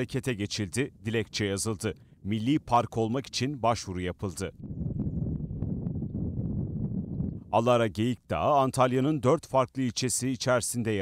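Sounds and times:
wind noise on microphone: 0.0s - 8.5s.

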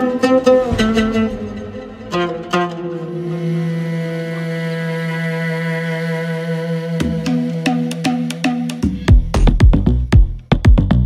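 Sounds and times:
held synth drone: 0.0s - 9.2s
drum machine beat: 7.9s - 11.0s.

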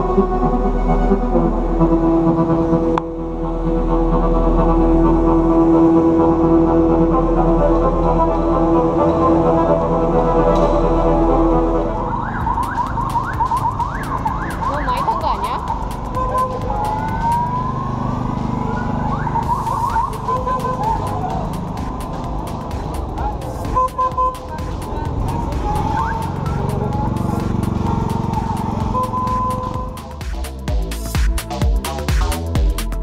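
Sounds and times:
siren-like whoops and wails: 11.8s - 21.8s, 25.0s - 27.2s.

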